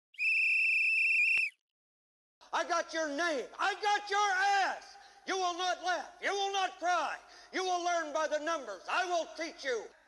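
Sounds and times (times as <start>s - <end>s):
high-pitched whistle blast: 0.1s - 1.6s.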